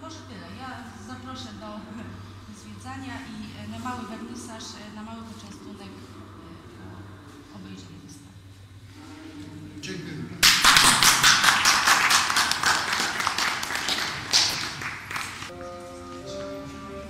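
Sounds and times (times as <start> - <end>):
audience applauding: 10.4 - 15.5
music with held notes: 15.5 - 17.0.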